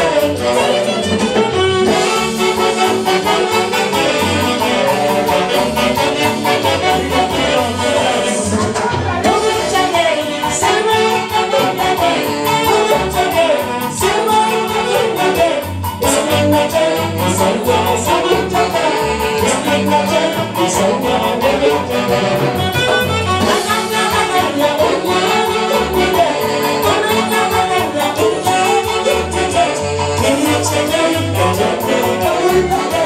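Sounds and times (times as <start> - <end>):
live band playing dance music: 0.0 - 33.0
person singing: 0.0 - 33.0
saxophones: 0.0 - 33.0.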